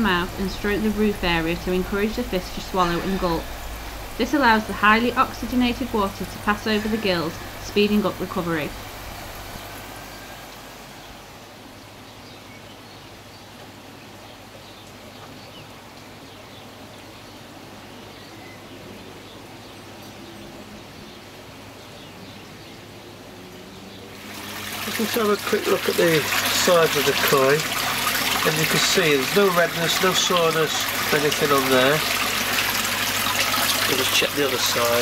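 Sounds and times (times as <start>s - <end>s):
low steady hum: 0.0s - 11.8s
water bubbling from airstone: 24.2s - 35.0s.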